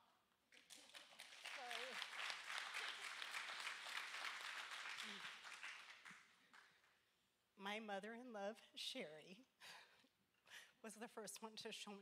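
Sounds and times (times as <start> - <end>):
audience applauding: 0.5 - 6.7.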